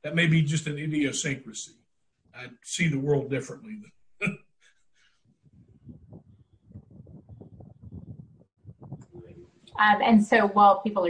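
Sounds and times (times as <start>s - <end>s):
person uttering a brief syllable: 0.1s - 1.6s, 2.5s - 3.8s
faint low crackling: 2.3s - 9.8s.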